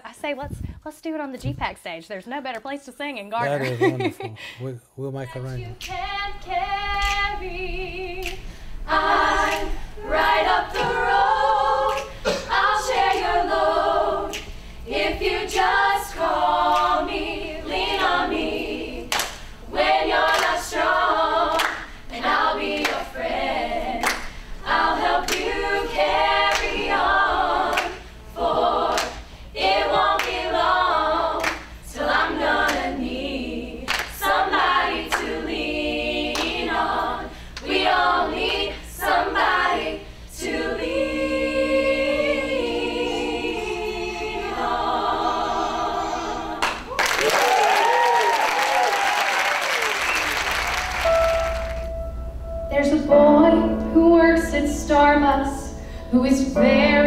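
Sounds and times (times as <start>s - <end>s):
women singing a cappella: 5.3s - 47.0s, 52.7s - 57.0s.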